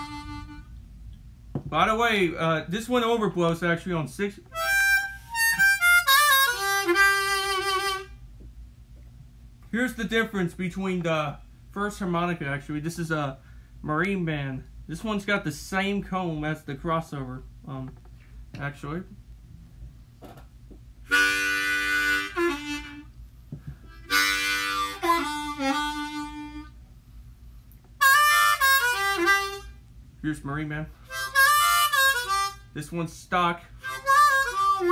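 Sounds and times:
harmonica playing: 0.0s - 0.8s, 4.5s - 8.3s, 21.0s - 23.2s, 23.9s - 26.8s, 28.0s - 29.8s, 31.0s - 33.0s, 33.7s - 34.9s.

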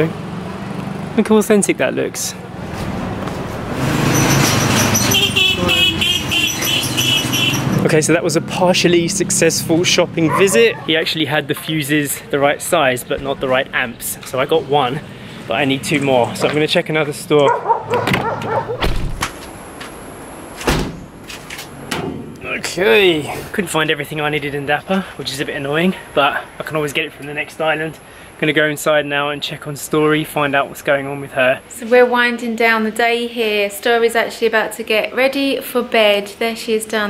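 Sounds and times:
high warbling chirps: 4.1s - 7.8s
car door slamming: 17.9s - 19.4s, 20.6s - 21.1s.

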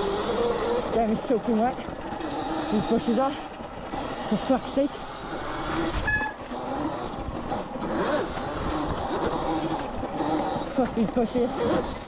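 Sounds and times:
bike pushing through bushes: 0.0s - 12.0s
electric motor whine: 0.0s - 12.0s.

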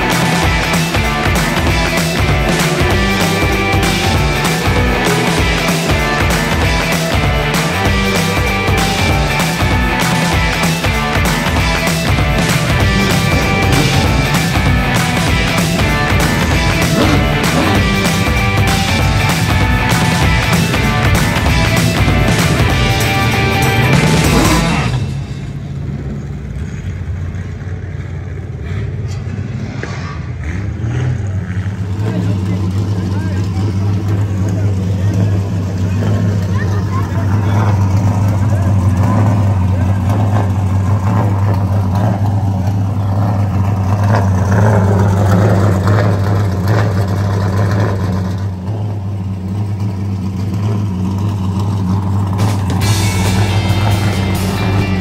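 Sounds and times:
race car engine idling: 0.0s - 55.0s.

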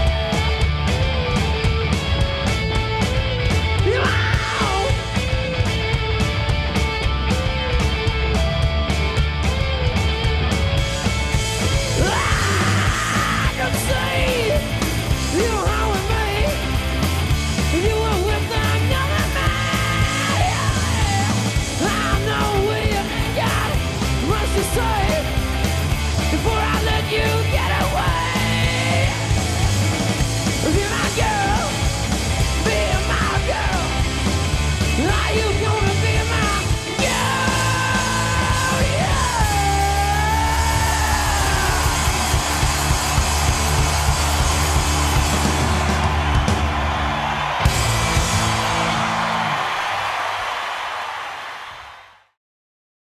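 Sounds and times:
bass guitar: 0.0s - 50.2s
electric guitar: 0.0s - 50.2s
rock band playing live: 0.0s - 51.1s
drums: 0.0s - 52.4s
man singing: 3.8s - 5.1s, 11.9s - 16.7s, 17.7s - 25.4s, 26.2s - 29.4s, 30.6s - 31.9s, 32.5s - 34.1s, 34.9s - 42.0s
singer yelling long note: 11.9s - 14.6s, 35.0s - 42.6s.

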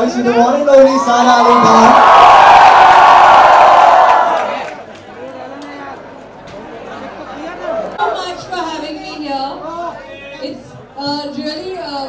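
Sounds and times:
crowd cheering and shouting: 0.4s - 4.8s.

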